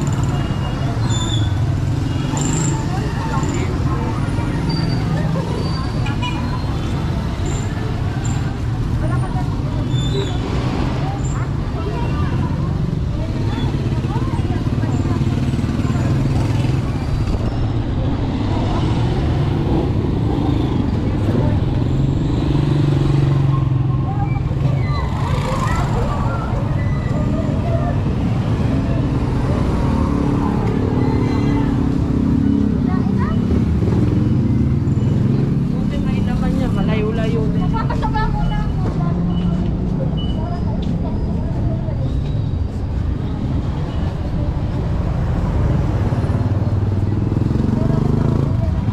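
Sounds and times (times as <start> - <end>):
motorcycle engines running: 0.0 - 48.9
passers-by talking: 0.0 - 48.9.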